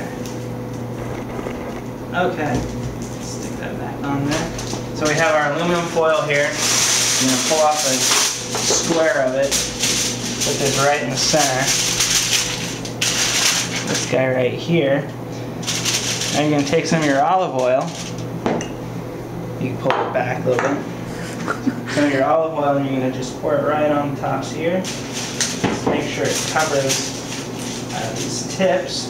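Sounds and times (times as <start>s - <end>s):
steady low hum: 0.0s - 29.0s
garlic skin crinkling: 4.4s - 14.2s, 24.8s - 28.5s.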